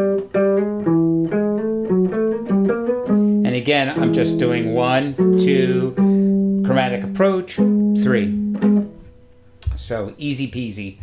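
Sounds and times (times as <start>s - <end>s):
electric guitar solo: 0.0s - 9.2s.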